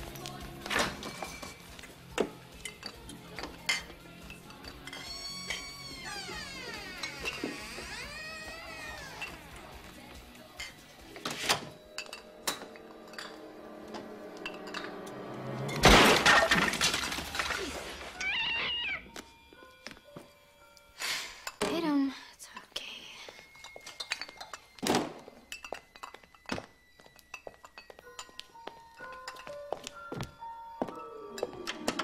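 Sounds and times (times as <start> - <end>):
loud crash with clattering: 15.7 - 18.1
cat meowing: 18.2 - 19.2.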